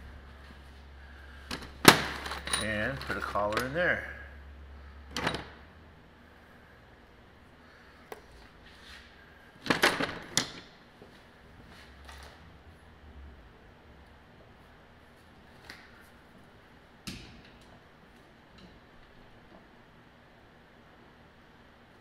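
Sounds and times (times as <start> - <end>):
metal tools clanking: 1.5 - 3.9.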